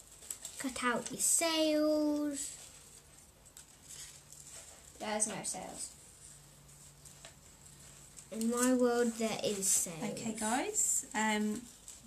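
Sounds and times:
soft handling sounds: 0.0s - 12.0s.

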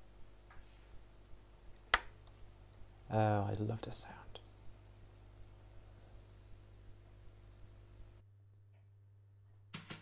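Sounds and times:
faint room hum: 0.0s - 10.0s
high-pitched electronic whine: 0.9s - 10.0s.

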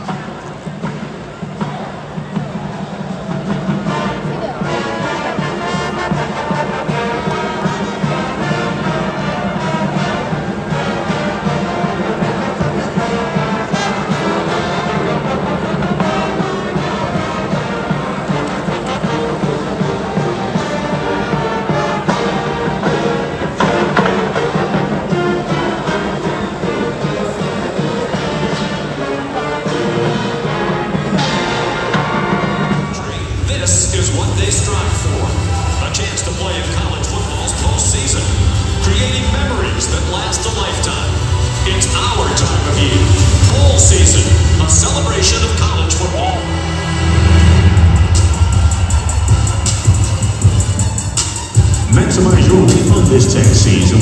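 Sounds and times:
marching band playing: 0.0s - 54.0s.

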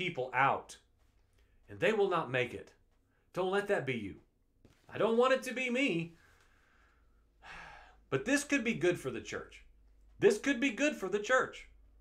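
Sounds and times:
man breathing close to microphone: 6.2s - 8.1s.

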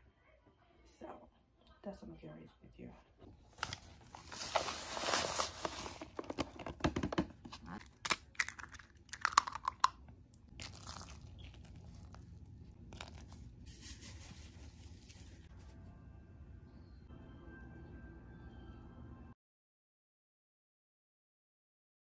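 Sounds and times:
dry mix rustling and pouring: 3.6s - 6.6s, 10.5s - 15.6s
egg cracking on bowl: 7.1s - 13.4s
sugar pouring: 7.8s - 15.4s.

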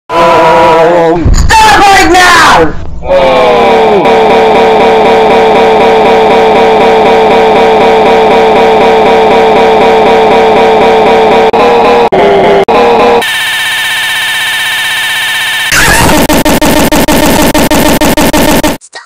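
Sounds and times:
distorted warbling tone: 13.2s - 18.8s
harsh buzzing tone: 13.2s - 18.8s.

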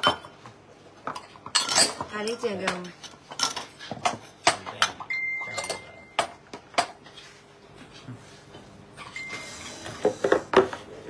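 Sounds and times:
drinking glasses clinking: 5.0s - 6.3s.

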